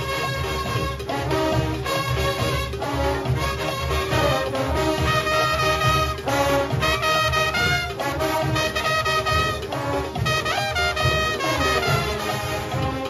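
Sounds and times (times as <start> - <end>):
brass horns playing a melody: 0.0 - 13.0
fast steady drumming: 0.0 - 13.0.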